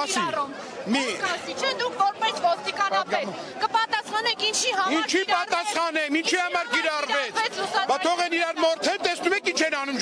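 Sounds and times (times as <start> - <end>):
men arguing: 0.0 - 10.0.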